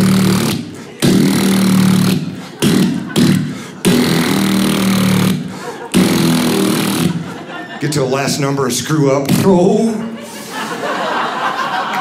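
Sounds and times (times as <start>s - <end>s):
man imitating rotary dial whirrs: 0.0s - 7.3s.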